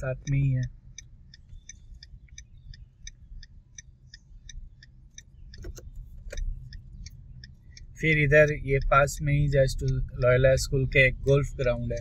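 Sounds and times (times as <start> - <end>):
road noise inside car: 0.0 - 12.0
turn signal ticking: 0.0 - 12.0.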